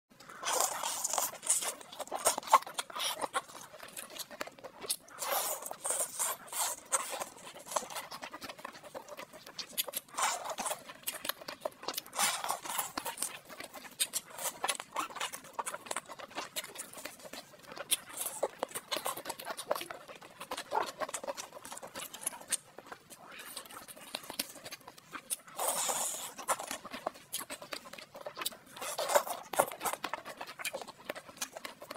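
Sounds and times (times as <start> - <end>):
chewing and wet mouth sounds: 0.1 - 31.9.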